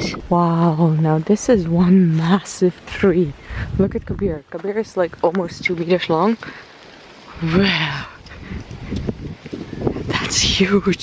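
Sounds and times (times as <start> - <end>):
wind rumble on microphone: 0.0 - 6.6, 7.2 - 11.0.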